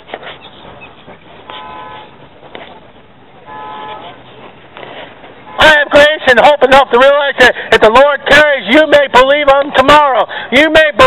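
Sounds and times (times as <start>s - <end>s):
low background noise: 0.0s - 11.0s
vehicle horn blasts: 1.5s - 2.2s, 3.4s - 4.2s, 5.4s - 5.9s.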